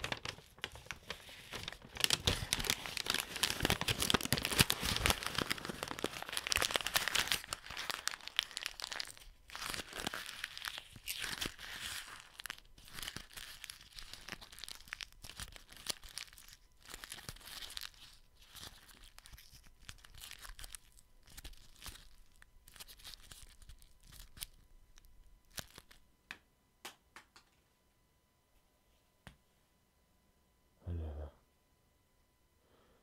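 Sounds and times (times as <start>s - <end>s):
paper being crumpled: 0.0s - 26.0s
crinkling material between fingers: 0.0s - 26.1s.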